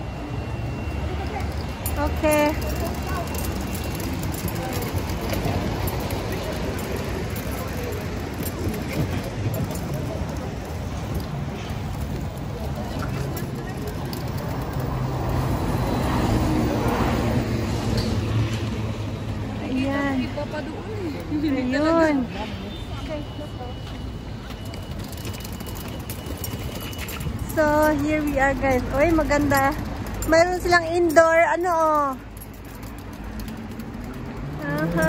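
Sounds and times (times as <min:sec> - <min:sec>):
road traffic rumble: 0:00.0 - 0:35.0
voices of passers-by: 0:00.0 - 0:35.0.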